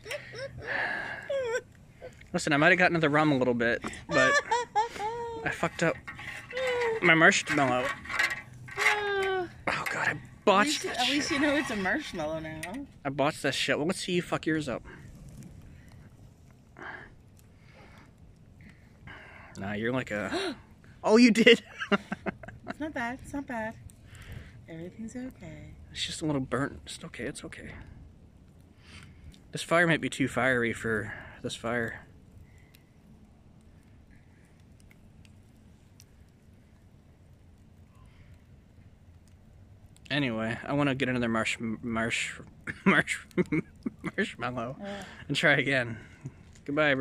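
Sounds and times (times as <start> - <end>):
wood fire crackling: 0.0 - 47.0.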